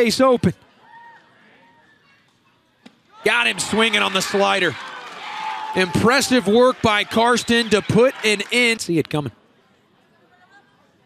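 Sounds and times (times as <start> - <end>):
faint ballpark crowd: 0.0 - 11.0
high call from the stands: 3.2 - 8.8.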